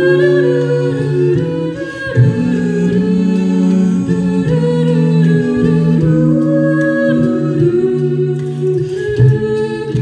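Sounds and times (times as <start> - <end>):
a cappella group singing: 0.0 - 10.0.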